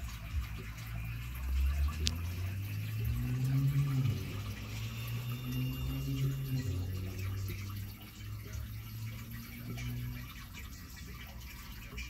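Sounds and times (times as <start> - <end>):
aquarium water running: 0.0 - 12.0
low filter hum: 0.0 - 12.0.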